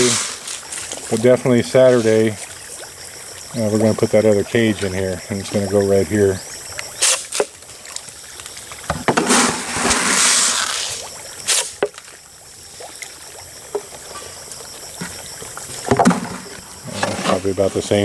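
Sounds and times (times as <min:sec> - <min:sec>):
fish splashing in water: 0:06.4 - 0:16.9.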